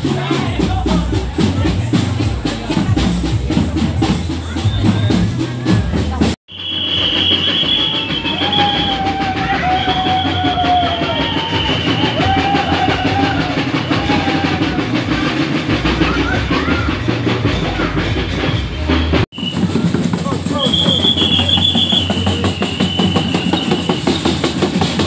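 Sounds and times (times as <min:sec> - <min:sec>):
percussion drumming: 0:00.0 - 0:25.0.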